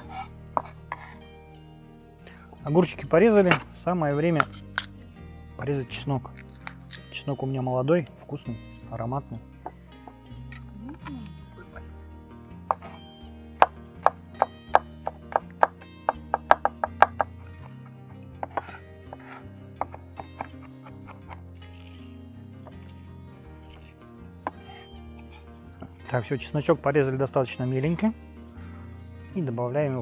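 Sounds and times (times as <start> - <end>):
background music: 0.0 - 30.0
knife chopping on wooden board: 12.7 - 13.0, 13.6 - 17.7, 18.4 - 21.4, 24.5 - 24.8.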